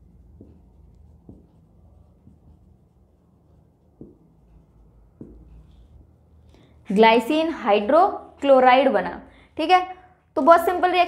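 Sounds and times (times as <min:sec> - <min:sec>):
marker pen writing on whiteboard: 0:00.0 - 0:08.6.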